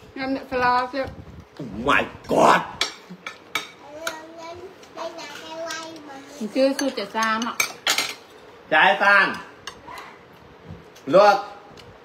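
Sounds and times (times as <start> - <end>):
cutlery clinking on plates: 6.7 - 8.4.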